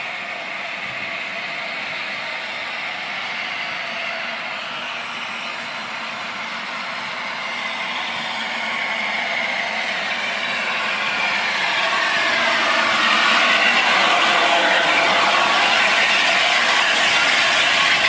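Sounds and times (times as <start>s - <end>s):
steam locomotive rushing: 0.0s - 18.0s.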